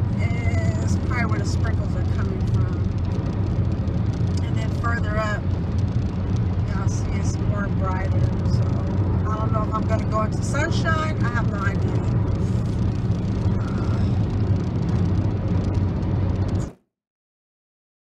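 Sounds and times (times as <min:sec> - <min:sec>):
car road and engine rumble: 0:00.0 - 0:16.8
voice: 0:00.1 - 0:02.9, 0:04.4 - 0:05.4, 0:06.7 - 0:12.7, 0:13.4 - 0:14.2.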